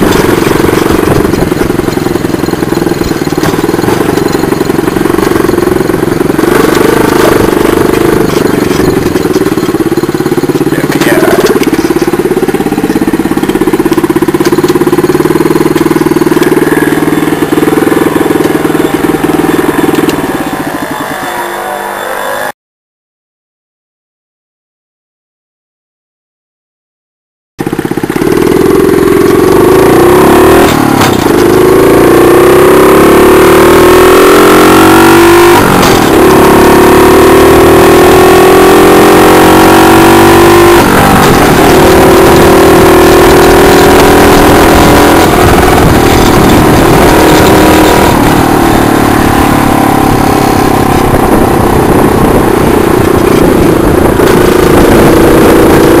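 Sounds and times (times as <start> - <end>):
small engine accelerating: 0.0 - 22.6, 27.6 - 56.0.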